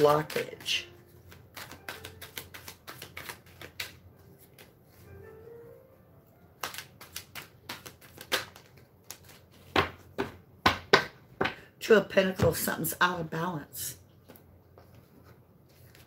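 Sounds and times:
cards being shuffled: 0.0s - 5.0s, 6.5s - 10.4s, 14.1s - 16.0s.

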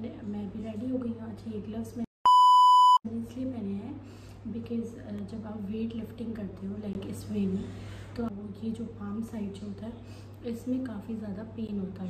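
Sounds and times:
woman speaking: 0.0s - 2.1s, 3.0s - 12.0s
electronic censor bleep: 2.3s - 3.0s.

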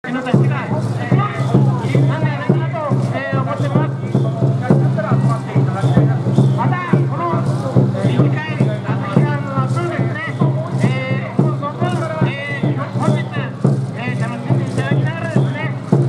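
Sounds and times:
crowd talking and calling out: 0.0s - 16.0s.

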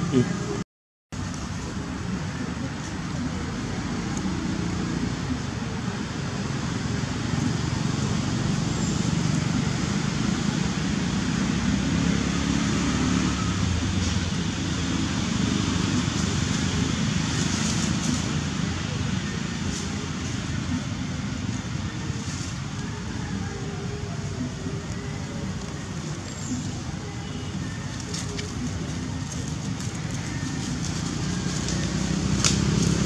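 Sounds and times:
low rumbling background noise: 1.2s - 33.0s.

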